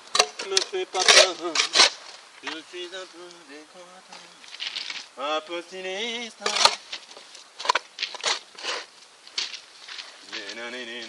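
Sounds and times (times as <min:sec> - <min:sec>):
shovel scraping soil: 0:00.0 - 0:02.7, 0:06.4 - 0:09.0
shovel blade knocking: 0:00.1 - 0:02.0.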